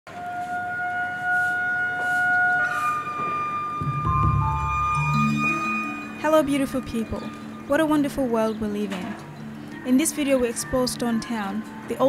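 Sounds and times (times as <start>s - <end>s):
long held music notes: 0.1s - 12.0s
low bass notes: 3.8s - 9.6s.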